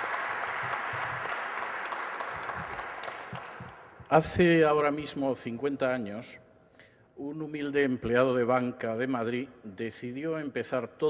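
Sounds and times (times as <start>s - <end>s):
audience applause: 0.0s - 4.0s.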